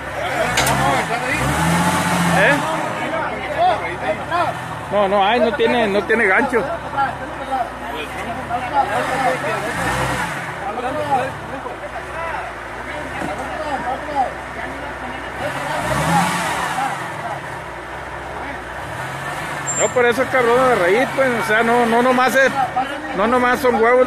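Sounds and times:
bystanders talking: 0:00.0 - 0:24.0
engine revving under load: 0:00.0 - 0:24.0.

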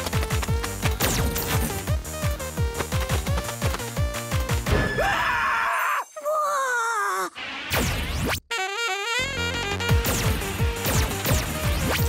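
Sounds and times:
background music: 0:00.0 - 0:05.6, 0:08.6 - 0:12.0.

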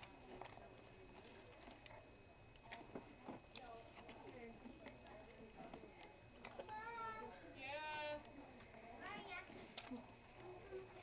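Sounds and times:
books and paper handled: 0:00.0 - 0:02.0, 0:02.6 - 0:06.8.

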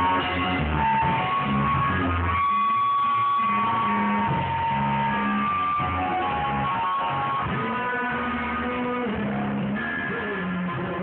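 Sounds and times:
bass line: 0:00.0 - 0:11.0
guitars: 0:00.0 - 0:11.0
live band playing: 0:00.0 - 0:11.0.

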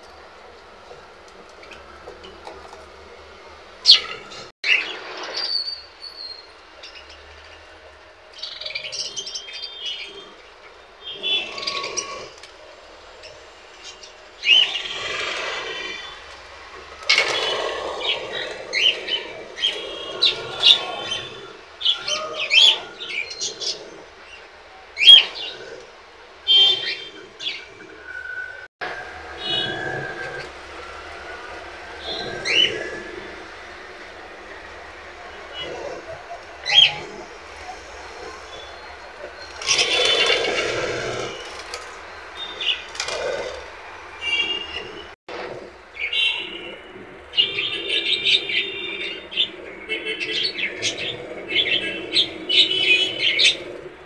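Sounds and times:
budgerigars chattering: 0:35.6 - 0:37.1.

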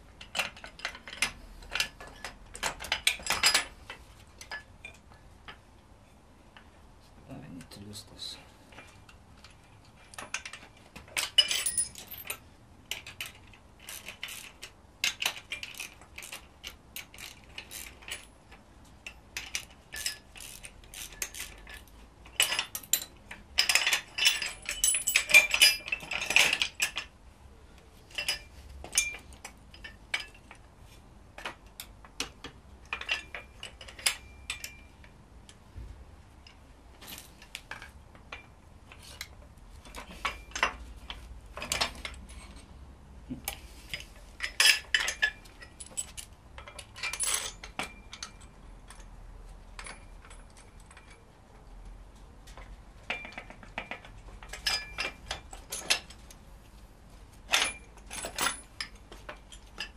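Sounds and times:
metallic clinks of bolts and tools: 0:00.2 - 0:05.0, 0:08.7 - 0:27.2, 0:28.1 - 0:30.7, 0:31.4 - 0:35.2, 0:36.4 - 0:42.8, 0:43.4 - 0:51.4, 0:52.5 - 0:56.4, 0:57.3 - 0:59.9.

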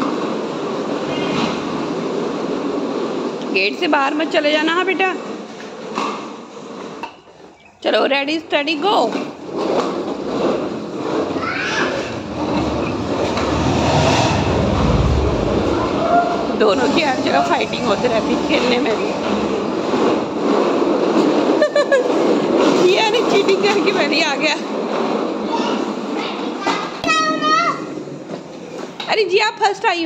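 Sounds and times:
plastic wheels rolling over tiles: 0:00.0 - 0:30.0
child's voice: 0:11.4 - 0:12.2, 0:25.4 - 0:28.0.

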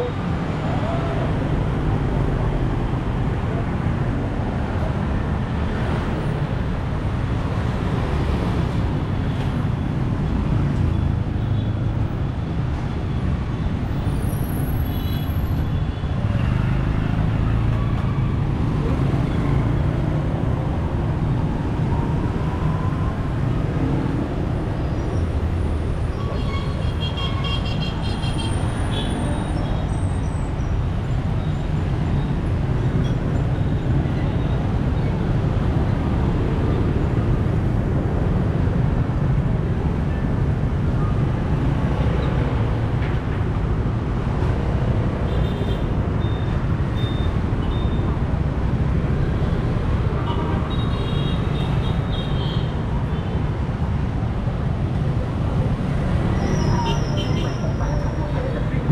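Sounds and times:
street traffic rumbling: 0:00.0 - 0:58.9.

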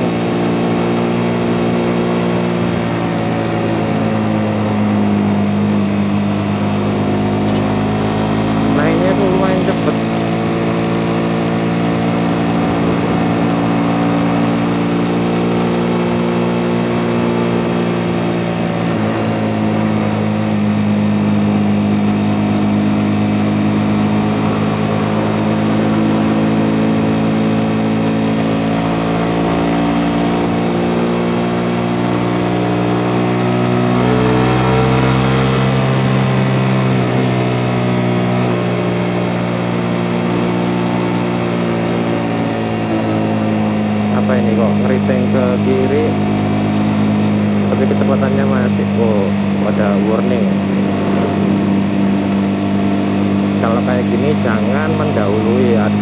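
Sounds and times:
motorcycle engine cruising: 0:00.0 - 0:56.0.

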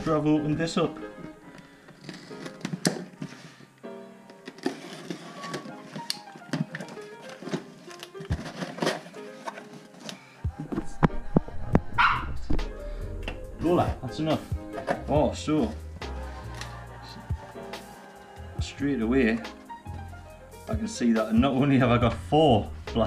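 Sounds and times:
music: 0:00.0 - 0:23.0
dog whining and barking: 0:12.0 - 0:12.4.

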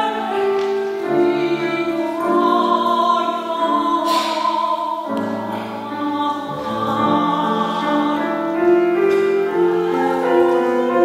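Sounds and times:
grand piano accompaniment: 0:00.0 - 0:11.0
woman singing opera: 0:00.0 - 0:11.0.

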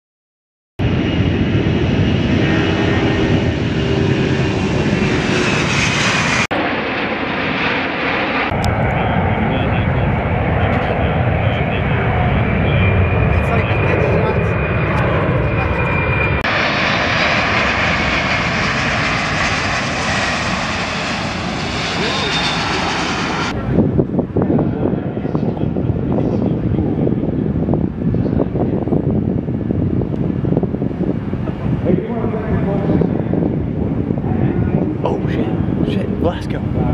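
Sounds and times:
jet engines whining and rumbling: 0:00.8 - 0:36.9.

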